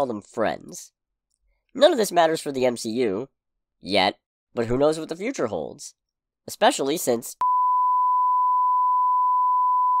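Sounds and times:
censor bleep tone: 0:07.4 - 0:10.0.

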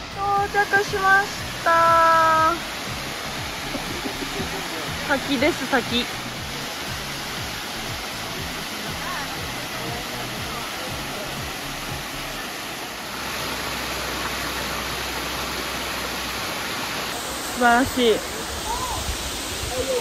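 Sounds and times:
waterfall rushing: 0:00.0 - 0:20.0.

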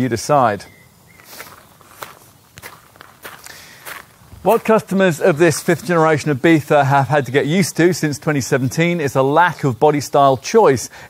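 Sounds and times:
footsteps crunching on gravel: 0:01.1 - 0:07.2.

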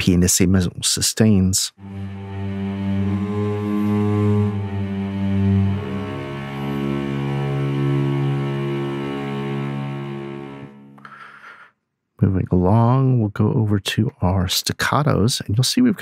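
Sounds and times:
bow noise on strings: 0:01.8 - 0:11.2
cello section sustained low notes: 0:01.8 - 0:11.3.

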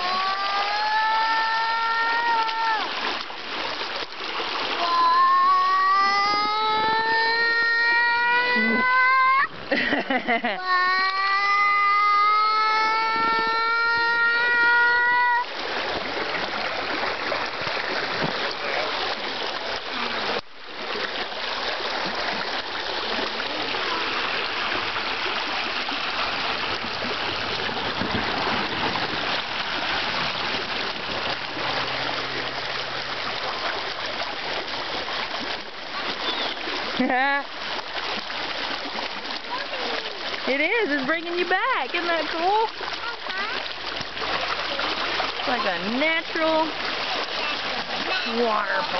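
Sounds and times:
long high squeals: 0:00.0 - 0:02.9, 0:04.8 - 0:09.5, 0:10.6 - 0:15.5
water rushing over small waterfall: 0:00.0 - 0:48.9.

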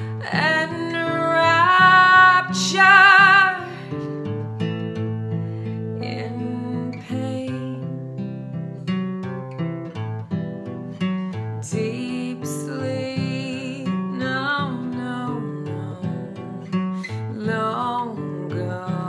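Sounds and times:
woman singing: 0:00.0 - 0:04.2, 0:05.8 - 0:08.3, 0:11.5 - 0:19.0
acoustic guitar strumming: 0:00.0 - 0:19.0.

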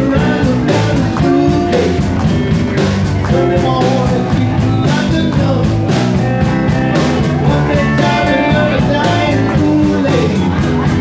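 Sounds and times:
man singing into microphone: 0:00.0 - 0:02.2, 0:03.3 - 0:06.0, 0:07.3 - 0:10.9
electric guitar: 0:00.0 - 0:11.0
rock band playing: 0:00.0 - 0:11.0.

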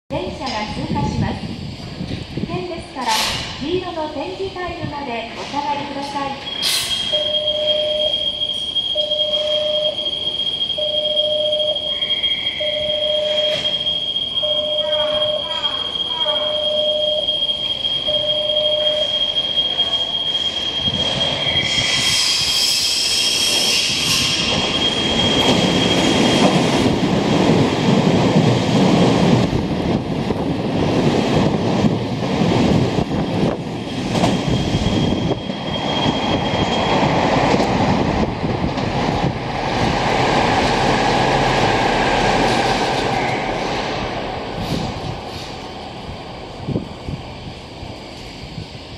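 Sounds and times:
shrill approaching train: 0:00.1 - 0:48.9
train wheels rumbling on rails: 0:00.1 - 0:48.9
repeating beep: 0:06.5 - 0:20.1
steady high tone: 0:07.0 - 0:22.1.

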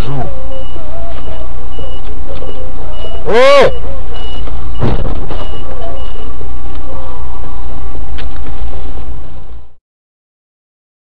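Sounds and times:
truck reversing alarm beeps: 0:00.0 - 0:08.1
distorted dashcam noise: 0:00.0 - 0:09.8
heavy thump: 0:04.8 - 0:05.5.

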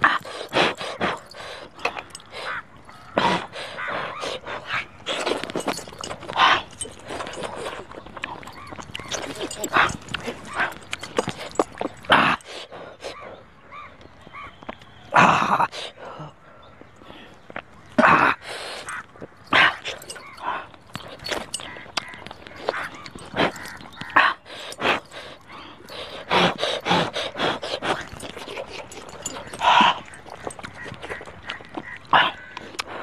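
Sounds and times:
man eating noisily: 0:00.0 - 0:13.2, 0:18.0 - 0:33.0.

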